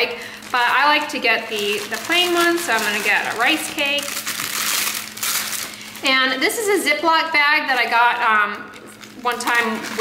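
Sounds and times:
plastic packaging crinkling: 0.0 - 6.7, 7.6 - 10.0.

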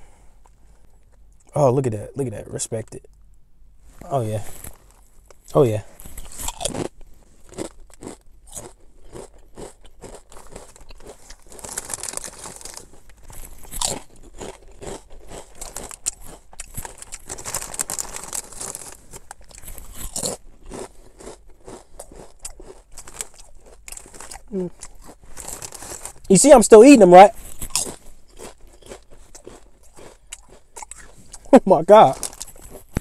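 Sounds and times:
person crunching potato chips: 4.6 - 26.5, 27.3 - 33.0.

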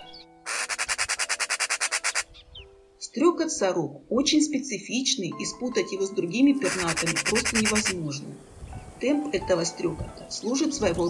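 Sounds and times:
magpie chattering: 0.0 - 2.6, 6.5 - 8.2
soft background music: 0.0 - 11.0.

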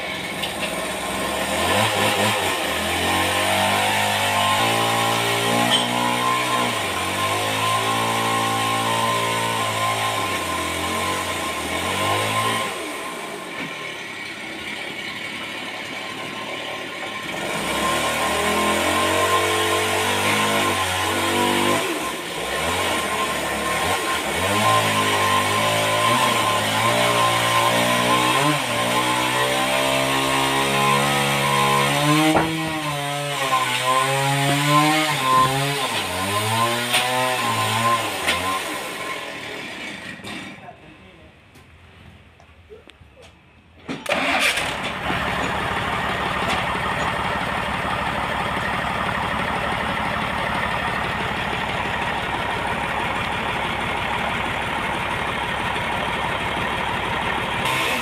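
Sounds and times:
sawmill machinery running: 0.0 - 40.6, 44.0 - 58.0.

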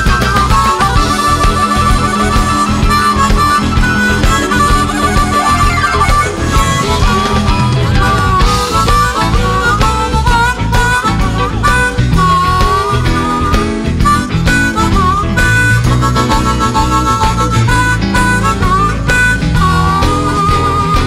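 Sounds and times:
harmonica with bending notes: 0.0 - 21.0
live blues band playing: 0.0 - 21.0.

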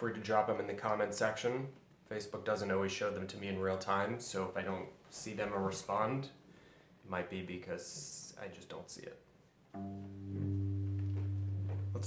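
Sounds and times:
electric guitar chord ringing: 9.8 - 12.0.

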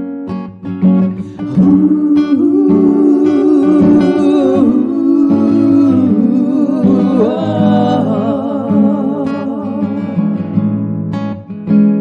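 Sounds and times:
acoustic guitar: 0.0 - 12.0
woman singing wordless notes: 1.4 - 10.6.

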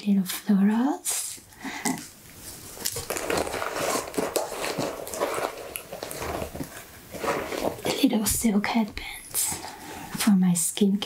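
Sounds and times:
fabric rustling and crinkling: 2.3 - 8.6.

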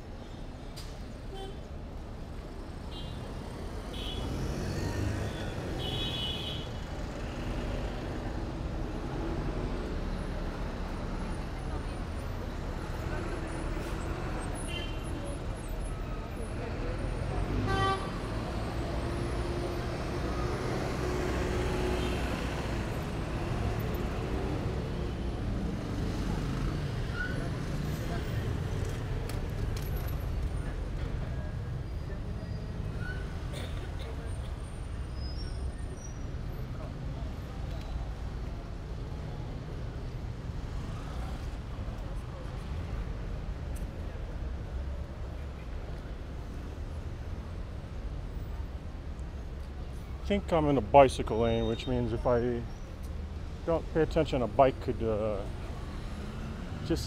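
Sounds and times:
street traffic rumble: 0.0 - 57.0
vehicle horn: 17.6 - 18.1.

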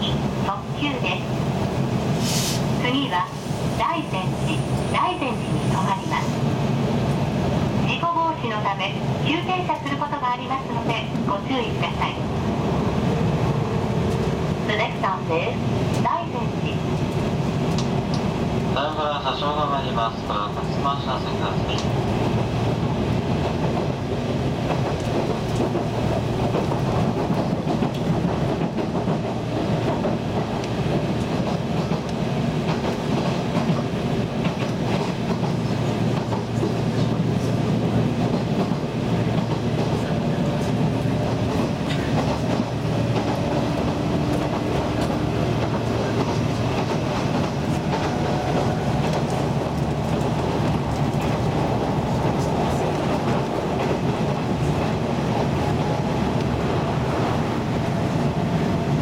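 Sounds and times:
train car rumble and rattle: 0.0 - 59.0.

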